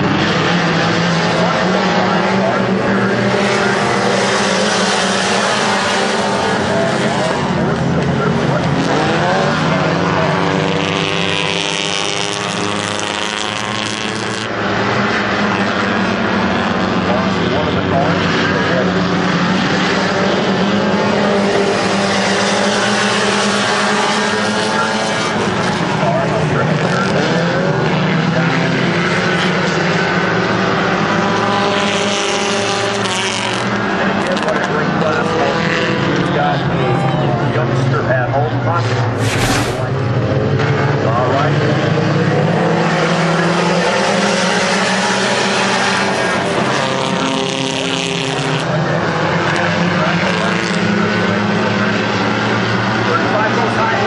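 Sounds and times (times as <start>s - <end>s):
race car engines revving: 0.0s - 54.0s.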